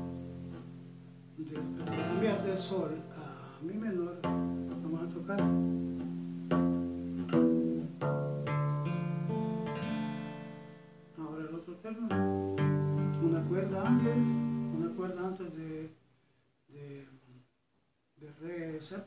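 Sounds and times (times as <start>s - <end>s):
classical guitar strumming: 0.0s - 15.6s.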